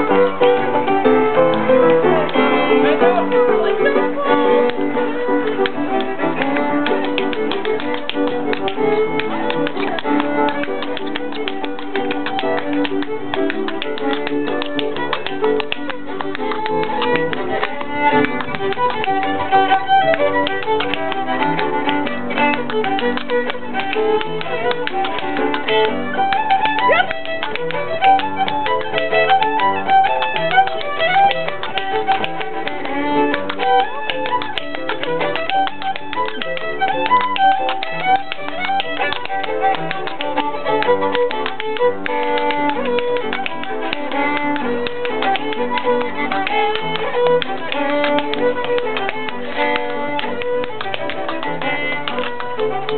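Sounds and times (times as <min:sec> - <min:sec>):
dancer's tapping steps on floor: 0:00.0 - 0:52.9
traditional folk tune played live: 0:00.0 - 0:52.9.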